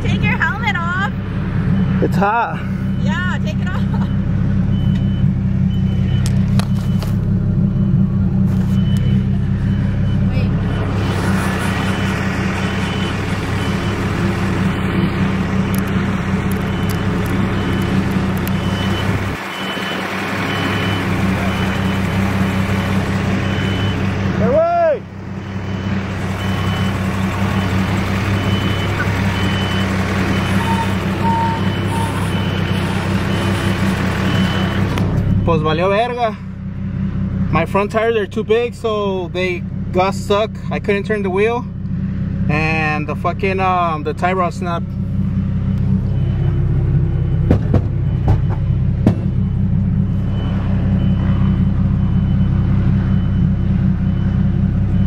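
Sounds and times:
tractor engine running: 0.0s - 55.0s
high beeps: 1.7s - 24.6s, 25.4s - 36.2s, 45.5s - 55.0s.

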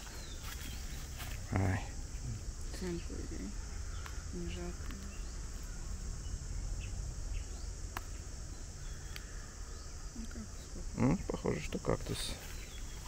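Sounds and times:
high-pitched insect chorus: 0.0s - 13.0s.

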